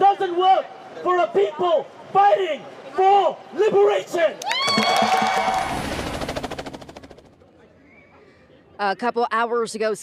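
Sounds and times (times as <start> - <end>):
crowd cheering: 3.5 - 6.3
helicopter rotor chopping: 4.8 - 7.5.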